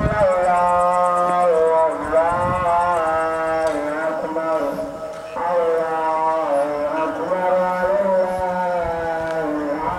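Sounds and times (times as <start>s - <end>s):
man chanting: 0.0s - 9.9s.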